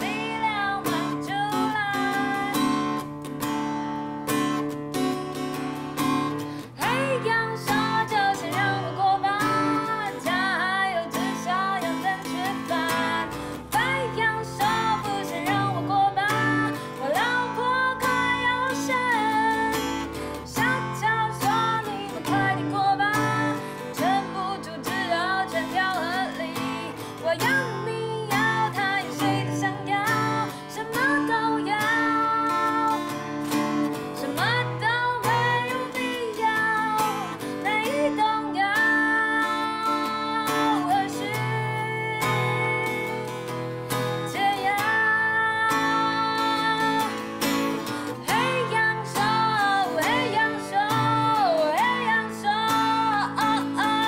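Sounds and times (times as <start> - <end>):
acoustic guitar strumming: 0.0 - 54.0
woman singing: 0.0 - 54.0.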